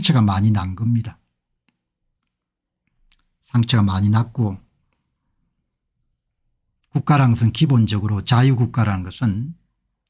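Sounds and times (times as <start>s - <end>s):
man speaking: 0.0s - 1.3s, 3.4s - 4.8s, 6.8s - 9.7s.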